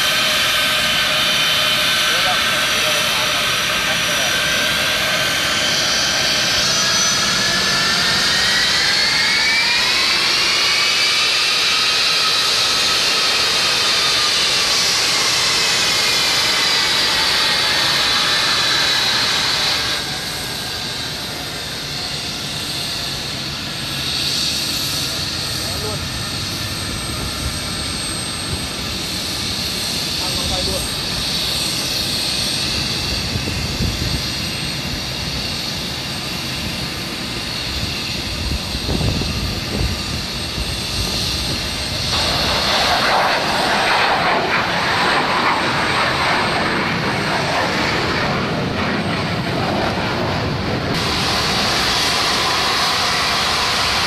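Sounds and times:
jet engine high whine: 0:00.0 - 0:54.0
steady jet engine noise: 0:00.0 - 0:54.0.

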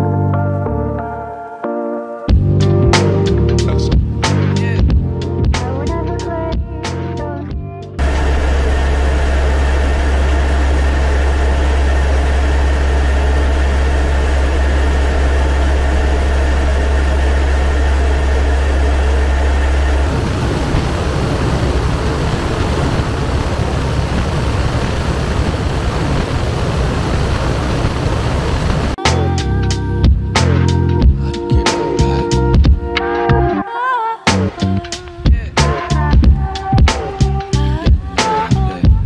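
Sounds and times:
deep hum: 0:02.3 - 0:33.6, 0:34.3 - 0:39.0
turboprop engines droning: 0:02.3 - 0:33.6.

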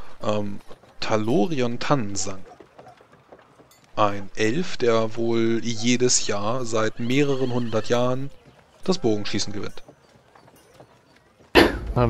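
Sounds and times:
man speaking: 0:00.0 - 0:02.5, 0:04.0 - 0:09.8.

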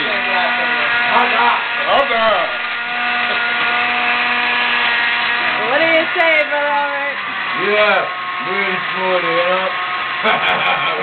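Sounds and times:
blender running: 0:00.0 - 0:11.0.

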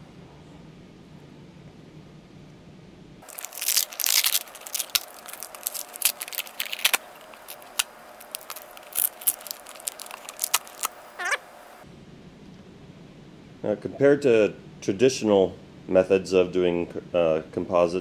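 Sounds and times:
plastic film crackling and crinkling: 0:03.2 - 0:11.8.

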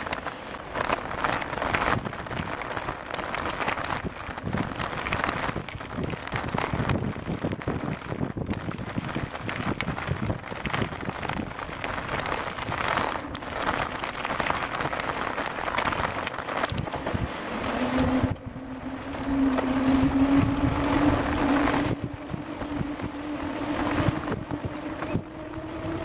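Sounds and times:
rattling rumble: 0:00.0 - 0:26.0
wind buffeting: 0:00.0 - 0:26.0.

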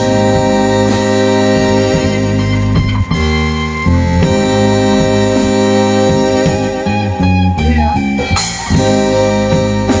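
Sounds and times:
drums: 0:00.0 - 0:10.0
electric bass: 0:00.0 - 0:10.0
electric guitar: 0:00.0 - 0:10.0
keyboard: 0:00.0 - 0:10.0.

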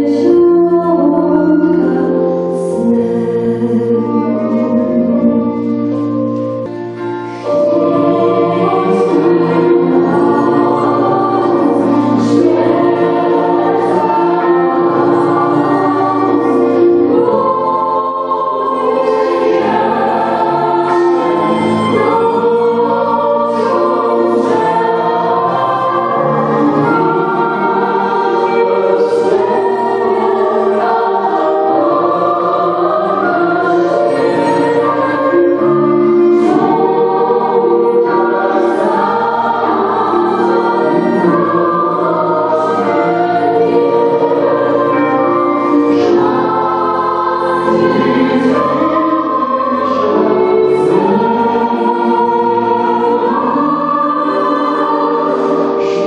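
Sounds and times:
choir singing a carol: 0:00.0 - 0:56.0.

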